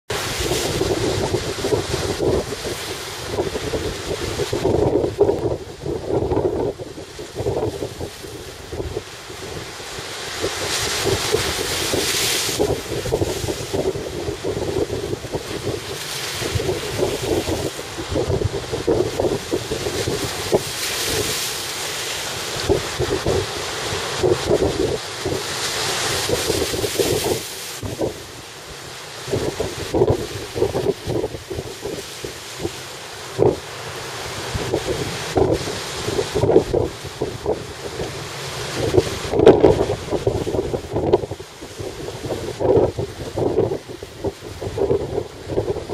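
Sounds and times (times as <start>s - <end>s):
surf breaking over rocks: 0.1s - 45.9s
wind buffeting microphone: 0.1s - 45.9s.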